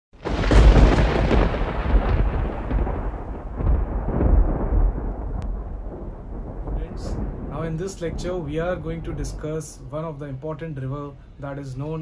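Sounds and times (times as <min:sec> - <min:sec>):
deep rolling rumble: 0:00.2 - 0:12.0.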